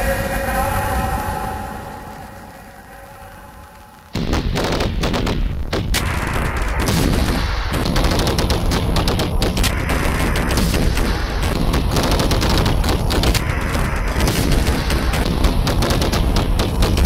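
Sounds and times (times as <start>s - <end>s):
wall of rapid sharp cracks: 3.7s - 17.0s.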